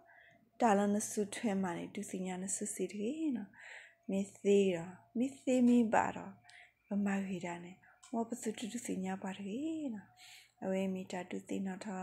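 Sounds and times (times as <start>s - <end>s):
woman talking: 0.6s - 12.0s.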